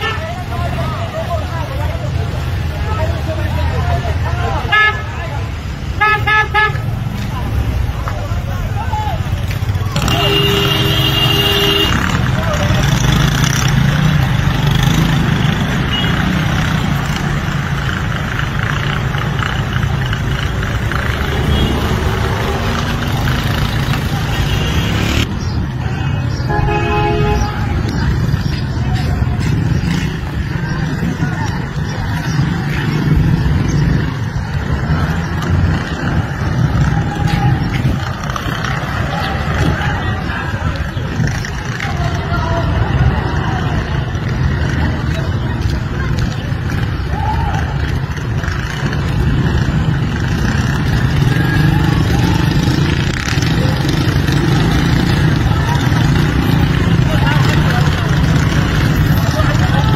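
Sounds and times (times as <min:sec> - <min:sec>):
motorcycle and car engines rumbling: 0:00.0 - 0:59.9
vehicle horns honking: 0:06.0 - 0:07.0, 0:10.0 - 0:12.2, 0:15.8 - 0:16.4, 0:21.4 - 0:22.1, 0:25.9 - 0:27.8.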